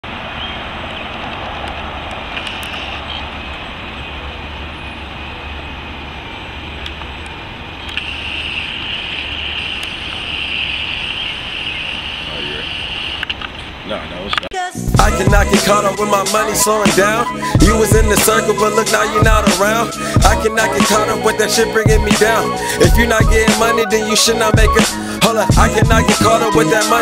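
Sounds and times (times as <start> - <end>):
distant traffic noise: 0.0 - 14.4
high hiss: 8.0 - 13.2.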